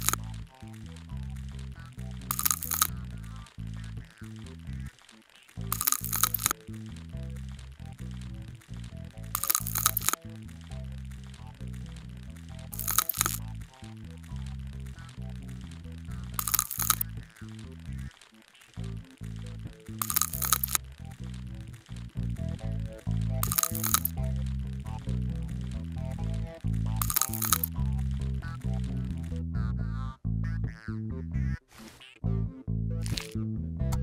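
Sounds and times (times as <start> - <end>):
slow low background music: 0.0 - 18.2, 18.8 - 34.0
scalpel scraping skin crackling: 0.0 - 29.2, 33.0 - 33.4.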